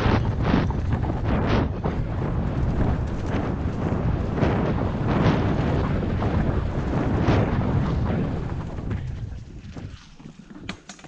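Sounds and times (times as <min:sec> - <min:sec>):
wind on camera mic: 0:00.0 - 0:10.8
bike tyres rumbling over trail: 0:00.0 - 0:11.0.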